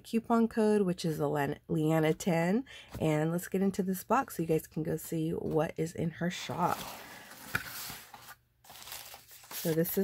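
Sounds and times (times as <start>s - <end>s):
cardboard flap rustling and scraping: 6.6s - 10.0s.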